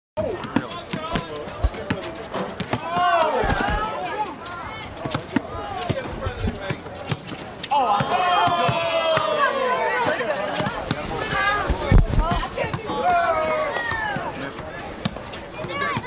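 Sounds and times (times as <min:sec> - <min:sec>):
people's voices and shouts: 0:00.2 - 0:16.0
basketball bouncing on hard court: 0:00.4 - 0:03.9.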